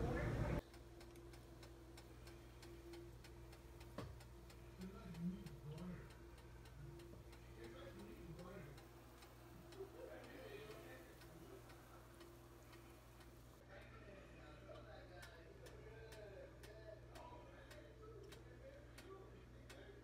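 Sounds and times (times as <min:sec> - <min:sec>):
faint muffled voices: 0:00.0 - 0:00.7, 0:04.5 - 0:20.0
steady low hum: 0:00.0 - 0:20.0
faint rapid ticking: 0:00.6 - 0:13.6.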